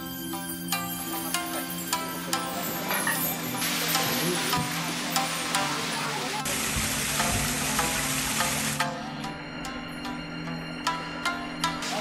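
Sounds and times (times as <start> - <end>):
soft background music: 0.0 - 12.0
waterfall splashing into pond: 3.6 - 8.8.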